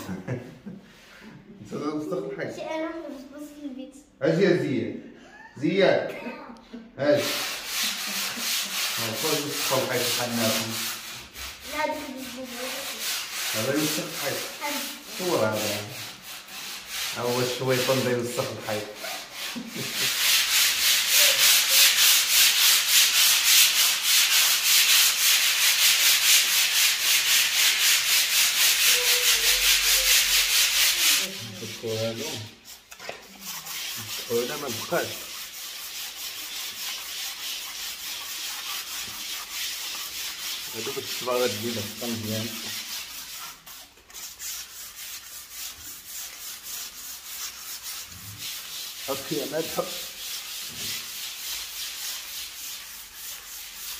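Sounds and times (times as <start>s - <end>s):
wall being scraped and sanded: 7.0s - 53.9s.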